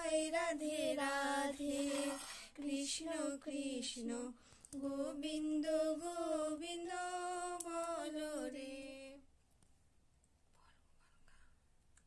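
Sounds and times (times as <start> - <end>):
person singing a chant: 0.0 - 9.2
faint whispering: 10.5 - 11.7.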